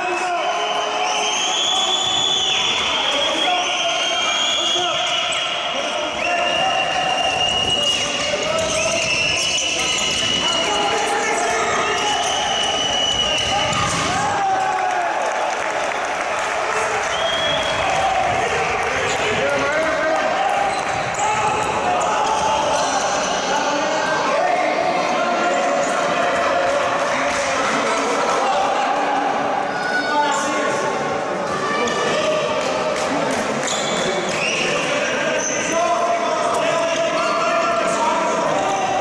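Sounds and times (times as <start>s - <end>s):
players shouting: 0.0s - 32.8s.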